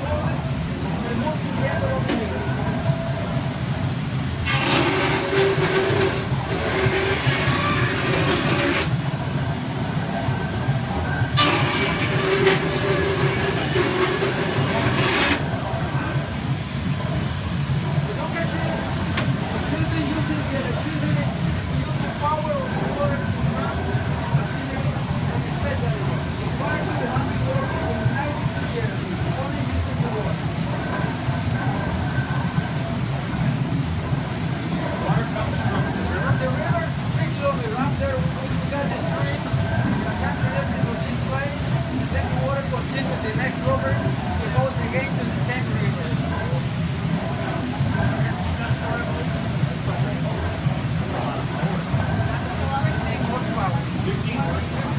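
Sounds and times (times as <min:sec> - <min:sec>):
machinery rumbling: 0:00.0 - 0:54.9
band saw cutting wood: 0:04.4 - 0:09.0, 0:11.4 - 0:15.6.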